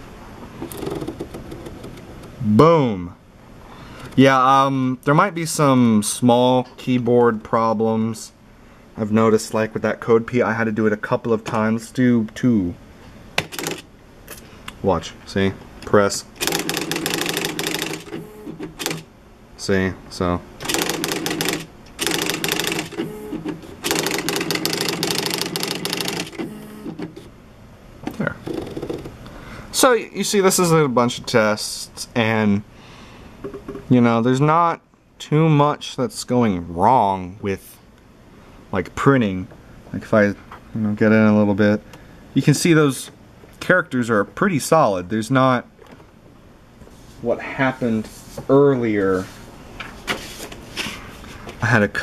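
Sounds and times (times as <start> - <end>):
typewriter motor humming: 0.6 - 2.3, 13.4 - 13.9, 16.4 - 19.1, 20.6 - 27.3
typewriter print clicks: 0.6 - 2.3, 13.4 - 13.9, 16.4 - 19.1, 20.6 - 27.3
typewriter character strikes: 20.6 - 23.1, 23.8 - 26.5.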